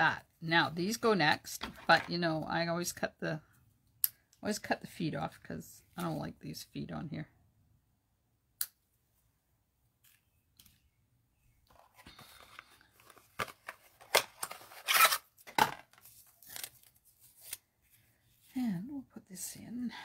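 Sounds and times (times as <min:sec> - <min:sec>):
paper rustling: 0:11.7 - 0:18.2.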